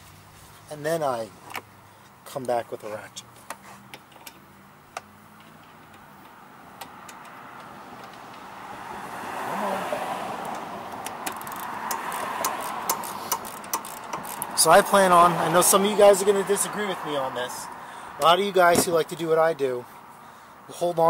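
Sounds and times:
socket ratchet clicking: 10.4s - 14.6s.

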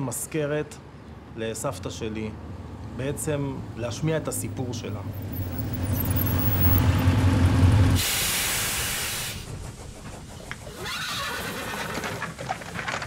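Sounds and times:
locomotive steam hiss: 8.0s - 11.7s.

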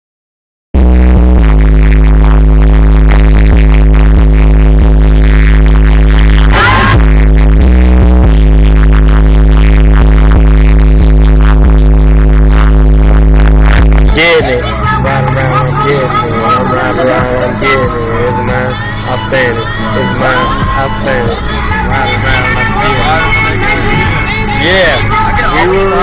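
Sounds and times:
electronic music on car stereo: 0.8s - 26.0s.

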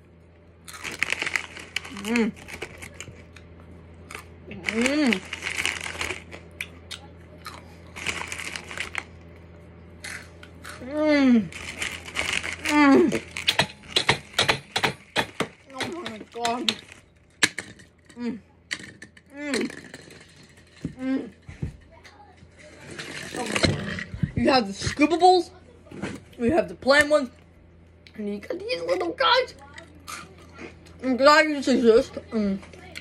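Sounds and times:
snack bags rustling and crinkling: 0.6s - 6.8s, 7.4s - 10.8s, 11.4s - 18.1s, 22.4s - 25.0s
corn chips crunching: 0.6s - 21.4s, 22.0s - 24.1s.

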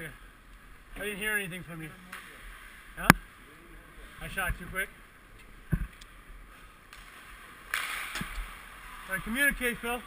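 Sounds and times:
ice rink background: 0.0s - 10.0s.

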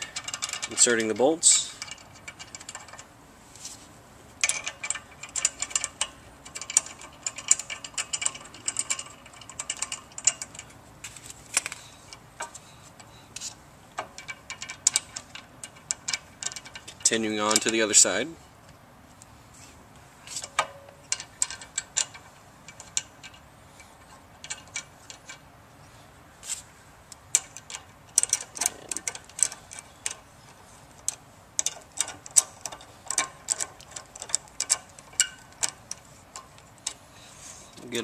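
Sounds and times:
metal clicks and taps: 4.4s - 10.8s, 24.4s - 25.4s, 27.1s - 30.3s, 31.0s - 37.0s.

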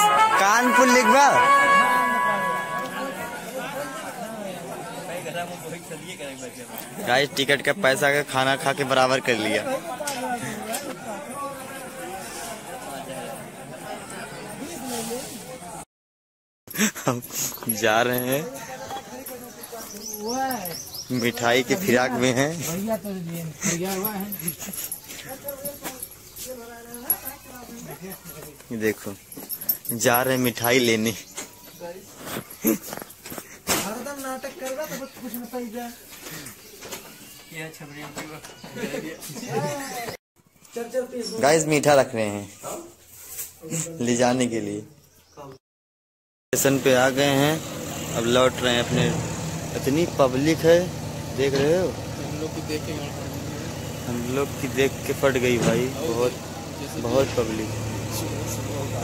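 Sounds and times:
people talking: 0.0s - 15.8s, 46.6s - 59.0s.

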